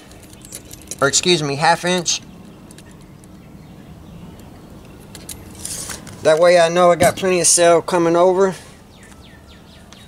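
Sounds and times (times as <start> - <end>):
short metal scrape: 5.6 - 6.1.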